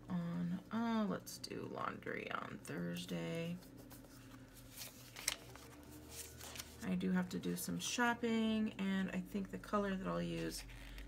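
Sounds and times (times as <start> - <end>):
paper sticker sheets rustling: 3.4 - 7.2.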